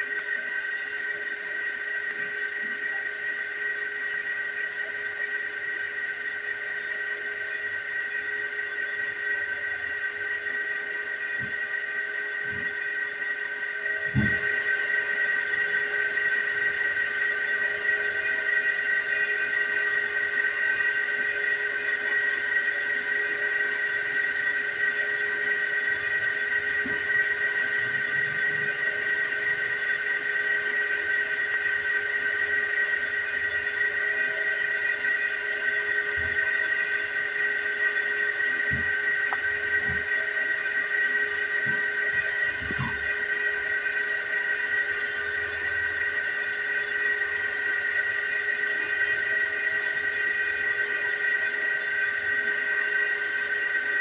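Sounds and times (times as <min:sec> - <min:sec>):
high-pitched whine: 0:00.0 - 0:54.0.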